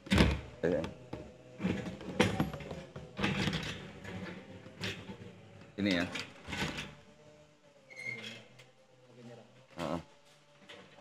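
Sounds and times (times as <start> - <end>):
knocks and scrapes of objects moved: 0.0 - 7.0.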